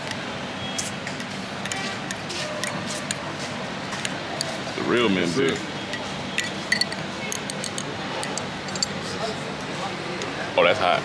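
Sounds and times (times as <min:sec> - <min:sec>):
teaspoon clinking against glass: 0:05.9 - 0:09.0.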